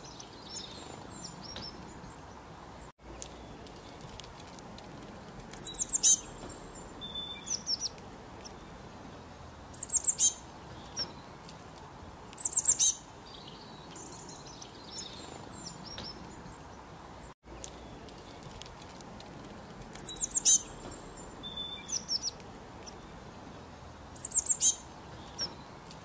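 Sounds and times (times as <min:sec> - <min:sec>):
faint steady hiss: 0:00.0 - 0:26.0
songbird chirping: 0:00.0 - 0:26.0.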